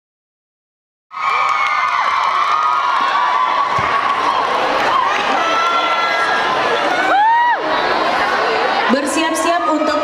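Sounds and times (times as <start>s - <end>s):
crowd cheering and screaming: 1.1s - 10.0s.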